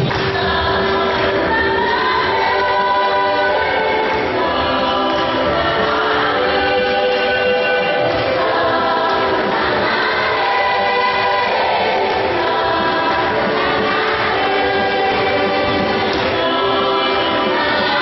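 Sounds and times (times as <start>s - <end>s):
choir singing held notes: 0.0s - 18.0s.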